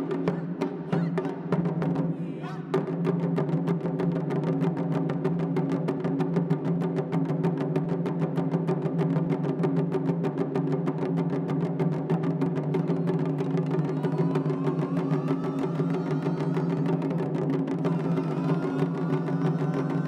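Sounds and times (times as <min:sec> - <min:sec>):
drum ensemble playing: 0:12.2 - 0:20.0.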